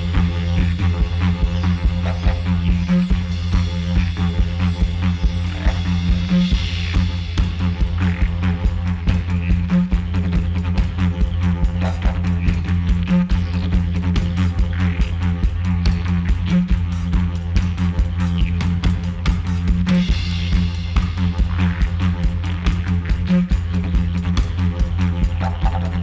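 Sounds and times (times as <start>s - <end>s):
low droning bass: 0.0s - 26.0s
music with steady driving beat: 0.0s - 26.0s.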